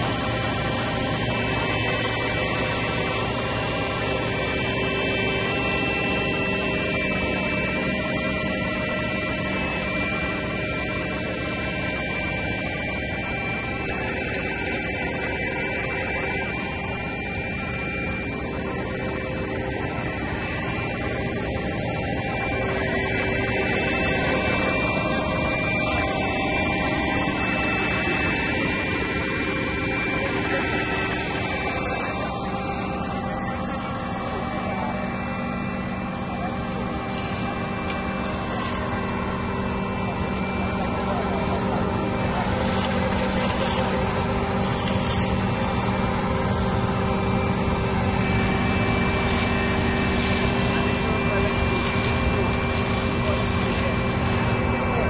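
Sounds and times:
diesel engine running: 0.0s - 55.0s
faint steady tones: 0.0s - 55.0s.

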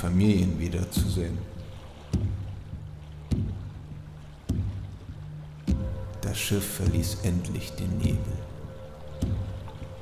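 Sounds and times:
low steady hum: 0.0s - 10.0s
oars pulling through water: 0.0s - 10.0s.

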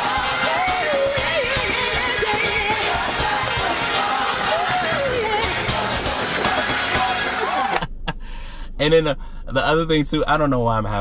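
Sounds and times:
noisy congregation: 0.0s - 7.8s
woman singing gospel: 0.0s - 7.8s.

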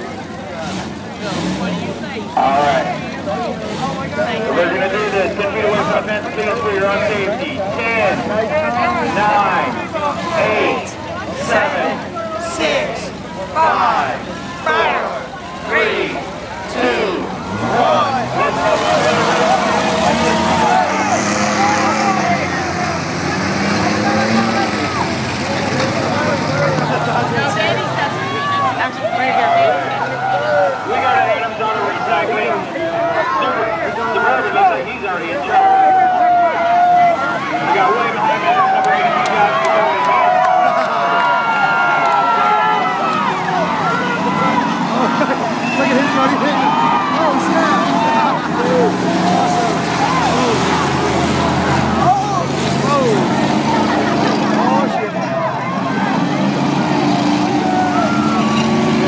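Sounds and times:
crowd yelling and cheering: 0.0s - 59.0s
vehicle engines running: 0.0s - 59.0s.

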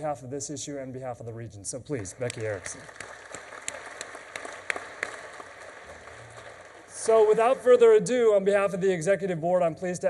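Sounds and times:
audience applauding: 2.0s - 8.1s.

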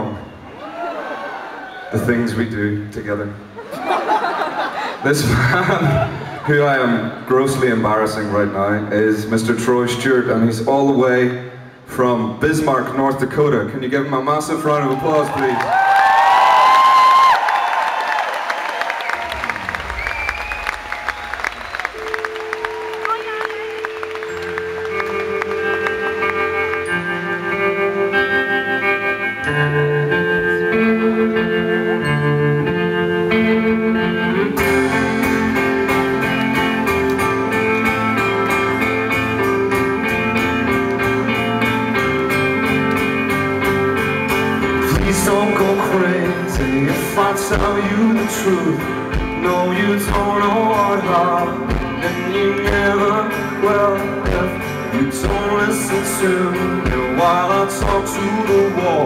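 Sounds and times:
crowd cheering and applauding: 0.0s - 2.1s, 14.6s - 27.7s, 34.6s - 45.4s
electric guitar notes: 19.0s - 59.0s
rock band playing: 19.0s - 59.0s
bass guitar: 19.2s - 59.0s.

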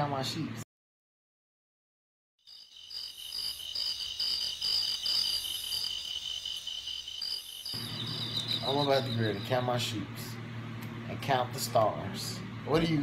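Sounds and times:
crickets chirping: 2.4s - 10.1s.

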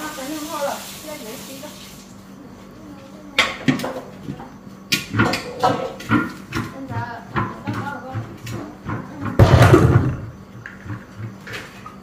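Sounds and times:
voices talking: 0.0s - 4.8s, 5.5s - 11.3s.

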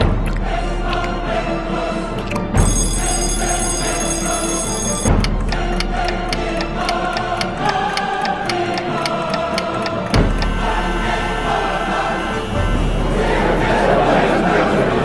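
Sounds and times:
clock ticking: 2.3s - 10.6s
steady high ringing: 2.6s - 10.4s.

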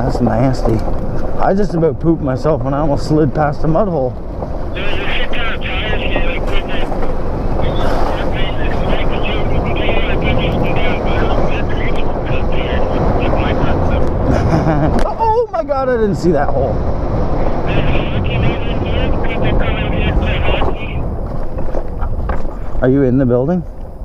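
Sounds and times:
tyres rolling over dirt trail: 0.0s - 15.4s
wind buffeting microphone: 0.0s - 24.0s
man's voice: 4.8s - 7.0s, 7.6s - 14.1s, 17.5s - 21.0s.

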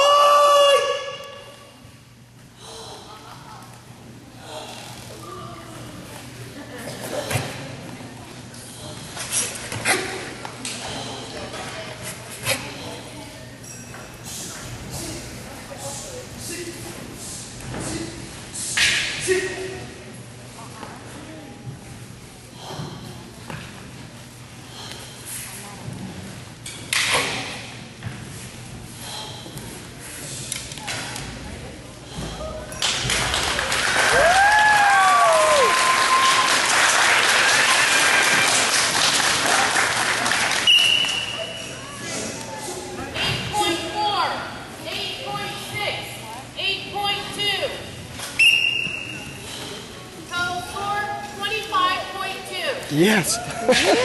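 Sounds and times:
loud sharp kiai shout: 0.0s - 1.6s
murmur of voices echoing: 0.0s - 26.5s, 36.7s - 54.0s.

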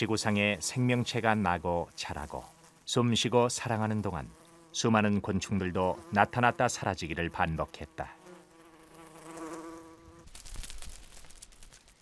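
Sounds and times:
insect wings buzzing: 0.0s - 12.0s.

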